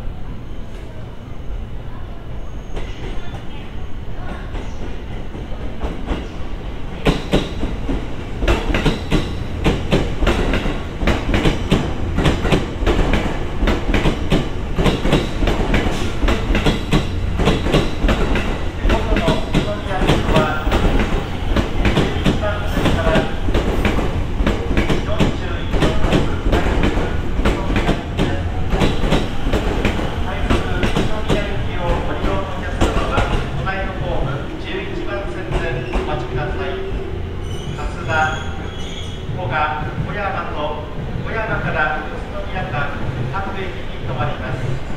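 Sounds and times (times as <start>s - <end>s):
train rumble: 0.0s - 44.9s.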